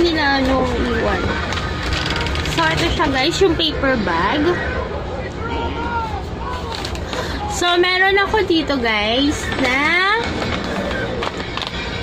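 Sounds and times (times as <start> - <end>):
background music: 9.4 - 12.0.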